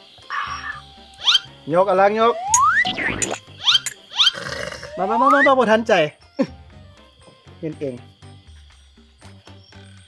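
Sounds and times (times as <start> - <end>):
light background music with bass: 0.0 - 10.0.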